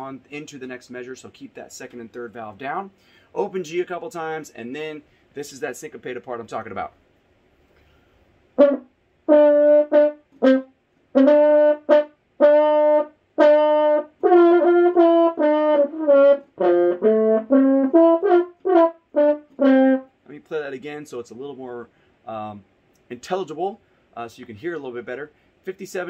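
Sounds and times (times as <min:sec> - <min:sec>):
french horn playing: 0:08.6 - 0:20.1.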